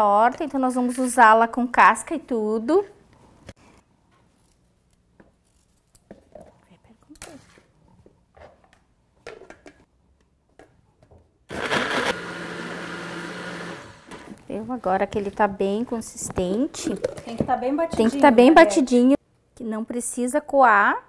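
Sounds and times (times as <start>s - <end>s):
electric blender running: 11.5s - 14.4s.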